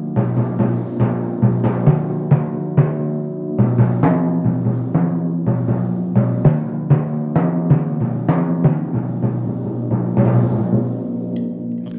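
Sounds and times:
timpani strokes: 0.1 - 11.9.

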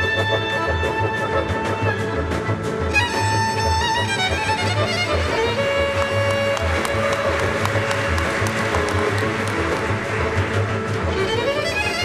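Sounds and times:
bowed violins melody: 0.0 - 12.0.

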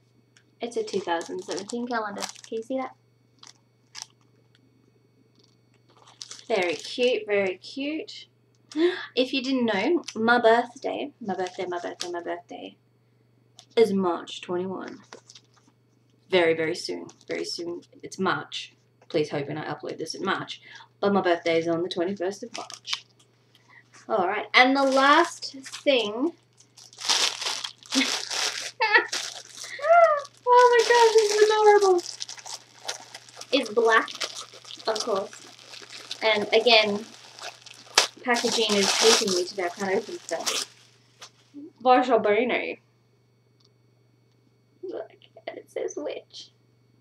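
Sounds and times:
steady low hum: 0.0 - 47.0
plastic packaging crinkling: 0.6 - 4.3, 5.4 - 7.2, 11.3 - 12.3, 14.9 - 15.7, 22.3 - 23.7, 24.6 - 41.4
faint low rumble: 23.7 - 42.4.

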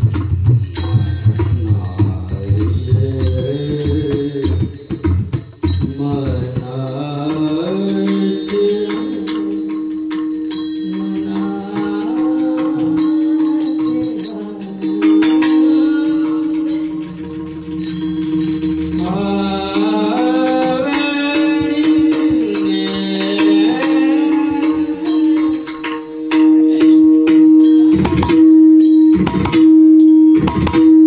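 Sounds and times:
person chanting: 1.0 - 4.8, 5.9 - 9.9, 10.8 - 28.2
steady drone note: 15.7 - 23.0.

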